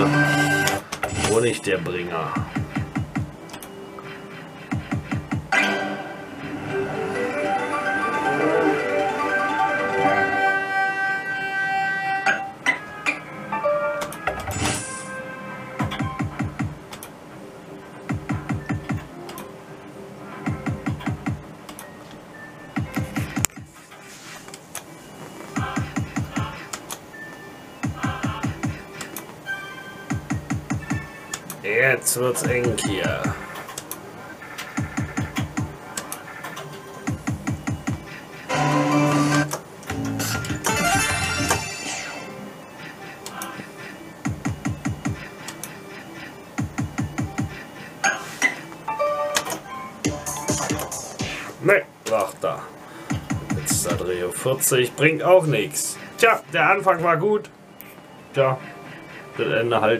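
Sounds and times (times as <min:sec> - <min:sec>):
slot machine reels stopping: 0:05.5 - 0:11.2
held synth chord: 0:05.5 - 0:14.0
electronic slot machine tones: 0:05.5 - 0:16.6, 0:34.8 - 0:51.5.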